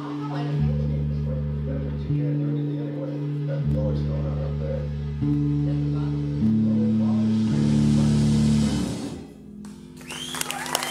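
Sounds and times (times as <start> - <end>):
rock band closing chord: 5.7 - 9.9.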